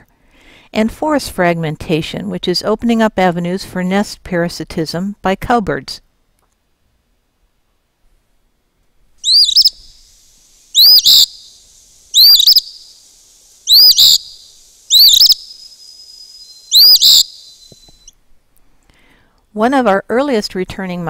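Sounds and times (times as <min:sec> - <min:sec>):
bird singing fee-bee phrases: 0:09.2 - 0:18.1.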